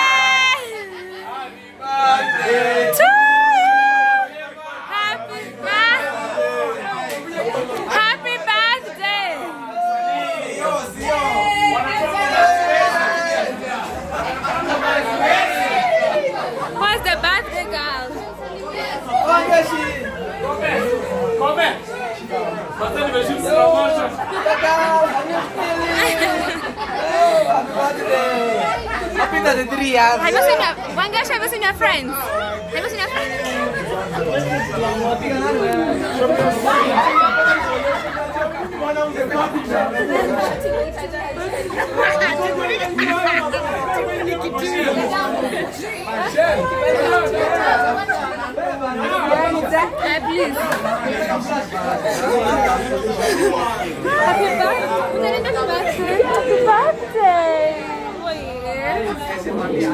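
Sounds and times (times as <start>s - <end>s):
overlapping chatter of a group: 0.0s - 59.9s.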